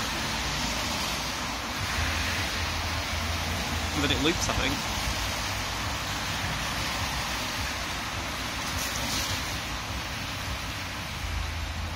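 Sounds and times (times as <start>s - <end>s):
passing traffic: 0.0s - 11.9s.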